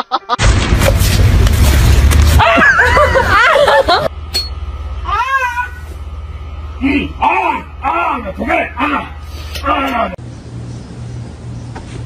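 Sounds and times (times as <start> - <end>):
low hum: 0.4 - 11.8.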